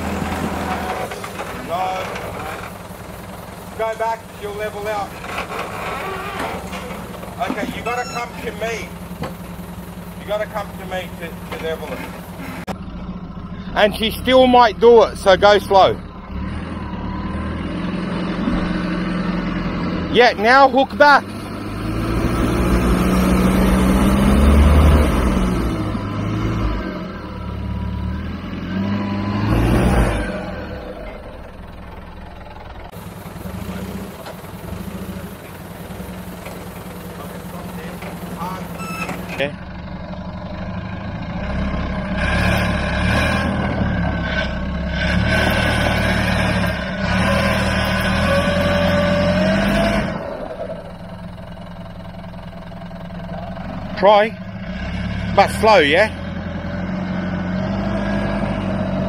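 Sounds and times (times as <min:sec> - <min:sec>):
diesel engine revving: 0:00.0 - 0:59.0.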